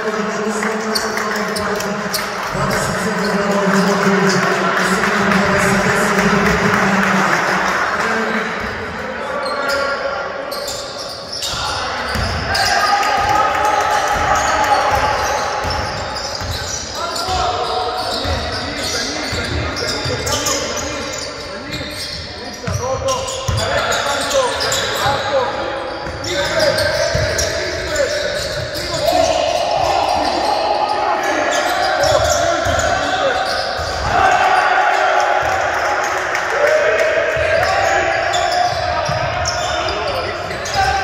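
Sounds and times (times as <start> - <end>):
basketball bouncing on court: 11.4 - 13.4, 14.0 - 17.4, 22.1 - 23.9, 26.0 - 29.2.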